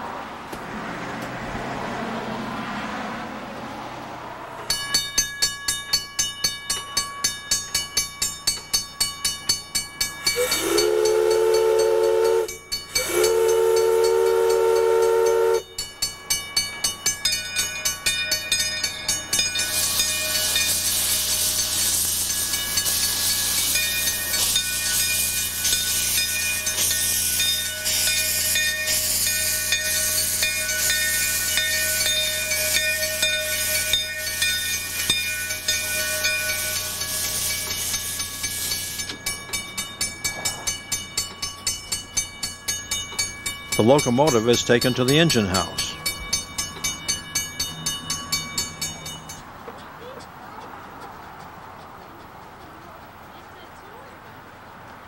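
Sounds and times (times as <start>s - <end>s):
locomotive rhythmic beat: 4.6s - 55.0s
steam hissing from cylinders: 9.5s - 16.9s, 17.6s - 50.1s
steam locomotive whistle: 10.3s - 15.8s, 19.6s - 39.1s.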